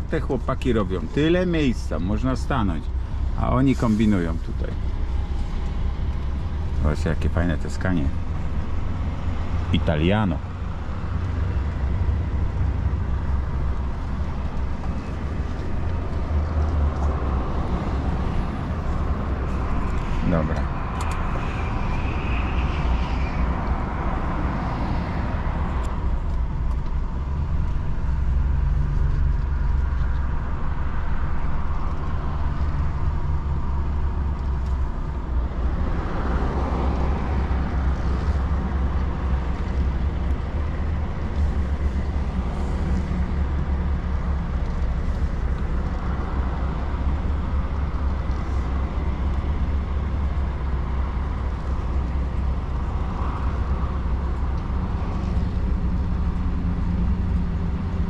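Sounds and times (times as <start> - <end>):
truck diesel engine rumbling: 0.0 - 58.0.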